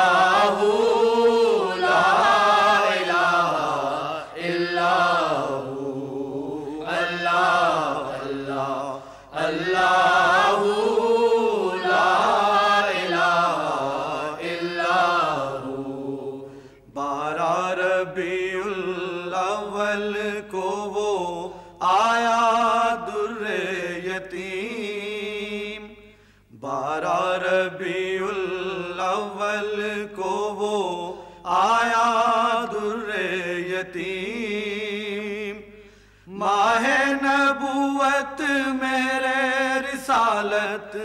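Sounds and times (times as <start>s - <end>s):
men chanting devotional song: 0.0s - 41.0s.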